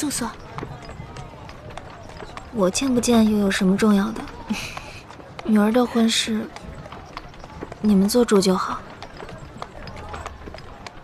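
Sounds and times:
horse hooves clip-clopping: 0.0s - 11.0s.

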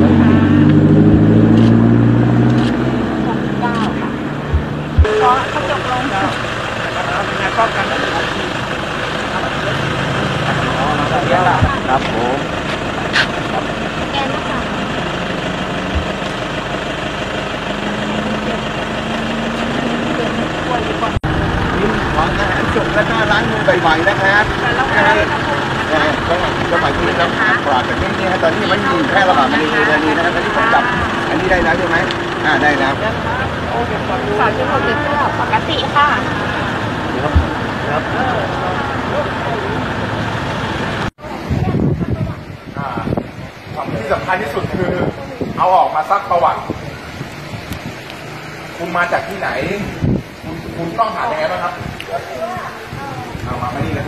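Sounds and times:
background voices: 0.0s - 45.6s
road traffic: 0.0s - 54.0s
truck engines idling: 0.0s - 54.0s
people talking: 2.6s - 40.2s, 41.0s - 54.0s.

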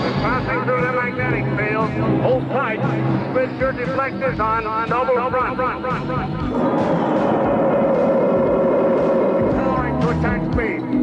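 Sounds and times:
spaceship engine drone: 0.0s - 10.5s.

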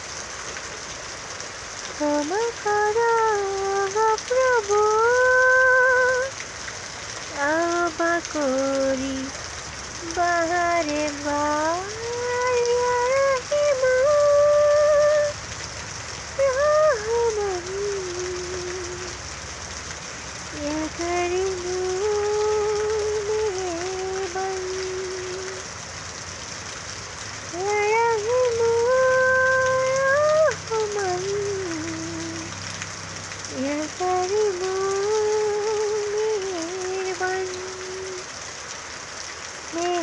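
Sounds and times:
rain falling on leaves: 0.0s - 40.0s
person singing long notes: 2.0s - 6.4s, 7.3s - 9.3s, 10.0s - 15.4s, 16.4s - 19.2s, 20.5s - 25.6s, 27.5s - 32.6s, 33.5s - 38.3s, 39.7s - 40.0s.

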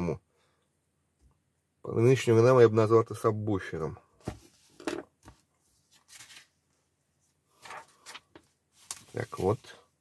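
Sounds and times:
magazine pages rustling: 4.3s - 6.7s, 7.5s - 9.8s.

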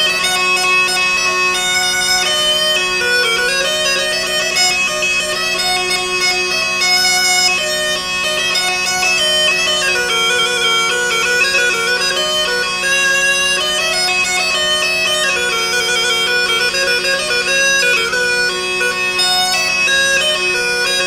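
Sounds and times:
bagpipe melody over drone: 0.0s - 21.0s.

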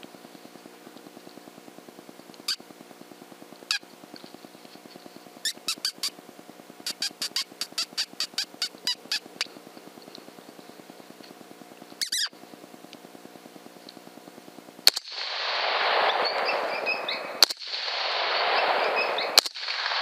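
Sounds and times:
faint steady hum: 0.0s - 20.0s
high sharp predator call squeaks: 5.4s - 6.2s, 6.8s - 9.3s, 12.0s - 12.4s, 16.0s - 17.4s, 18.4s - 19.4s.

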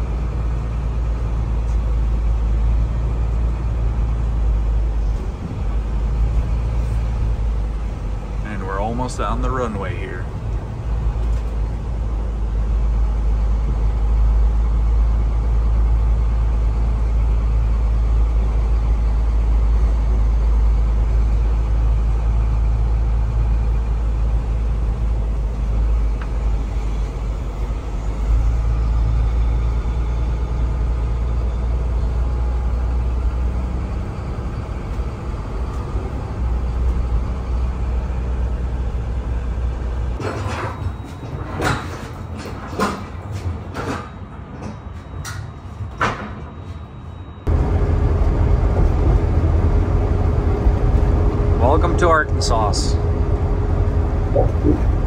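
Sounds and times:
truck engine rumble: 0.0s - 55.0s.

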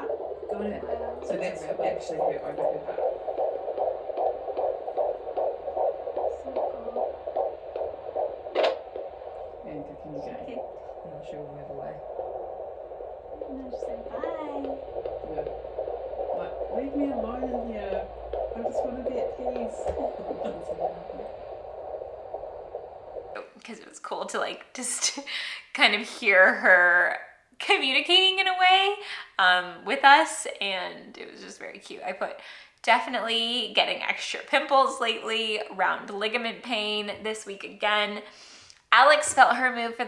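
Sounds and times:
fetal heartbeat pulsing from speaker: 0.0s - 23.6s.

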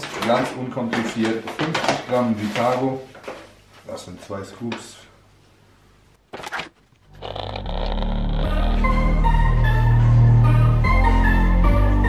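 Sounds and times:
electronic music with steady bass: 7.3s - 12.0s.

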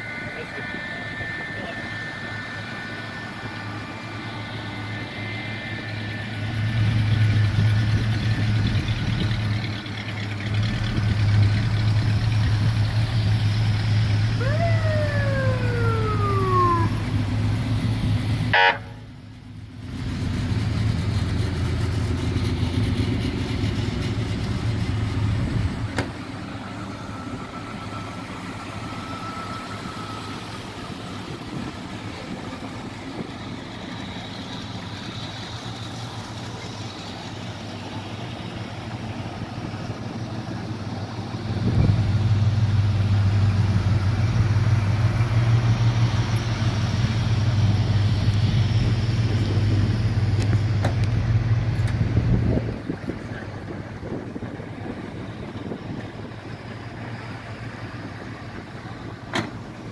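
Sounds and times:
siren winding down: 0.0s - 7.9s, 12.0s - 19.0s, 26.2s - 34.0s
car engines running: 0.0s - 59.9s.

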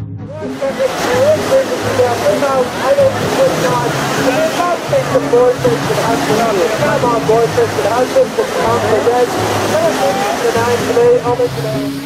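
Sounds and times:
background music: 0.0s - 12.0s
swimmers splashing into water: 0.4s - 12.0s.

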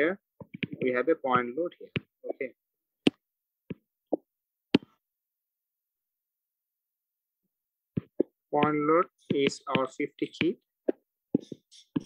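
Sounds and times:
stylus tapping glass screen: 0.4s - 2.4s, 3.1s - 5.0s, 8.0s - 12.0s.

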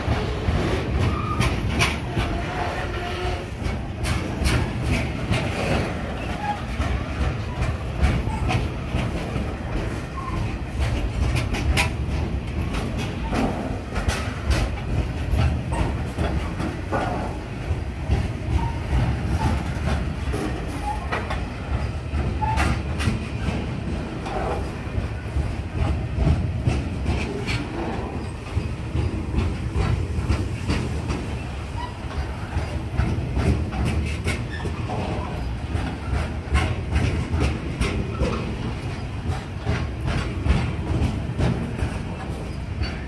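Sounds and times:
train wheels rumbling: 0.0s - 43.0s
wheels clanking over rail joints: 0.0s - 43.0s.

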